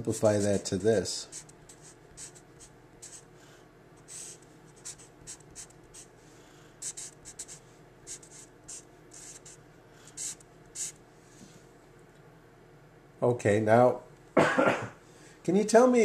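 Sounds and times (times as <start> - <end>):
marker writing on paper: 0.3 - 3.3, 4.0 - 6.1, 6.8 - 9.6, 10.2 - 11.0.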